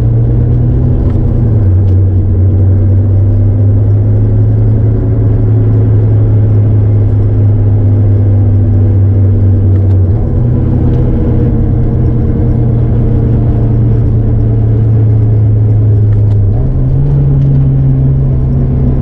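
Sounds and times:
car engine drone from inside cabin: 0.0s - 19.0s.

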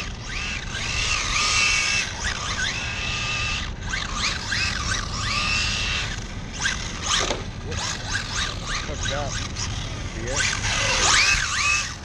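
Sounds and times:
electric motors whining: 0.0s - 12.0s.

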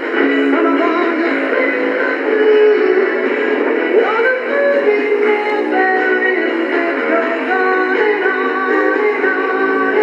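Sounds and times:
pop song on small radio speaker: 0.0s - 10.0s.

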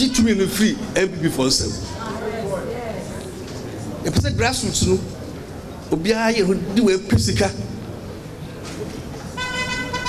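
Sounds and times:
background noise: 0.0s - 10.0s
horn steady note: 9.4s - 10.0s.

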